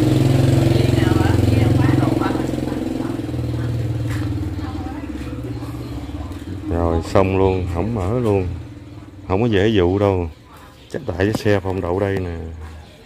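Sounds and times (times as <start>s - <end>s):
faint voices: 0.0s - 13.0s
motorcycle engine idling: 0.0s - 13.0s.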